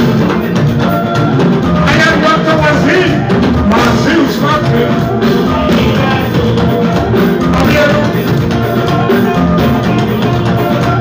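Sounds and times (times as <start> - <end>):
live band music: 0.0 - 11.0
steady drum beat: 0.0 - 11.0.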